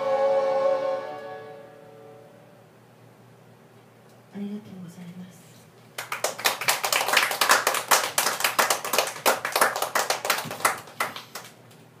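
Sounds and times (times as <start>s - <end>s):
audience applause: 6.0s - 11.6s.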